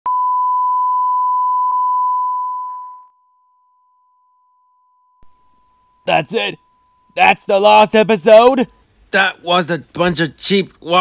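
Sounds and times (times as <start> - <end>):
steady test tone beep: 0.1 - 9.0.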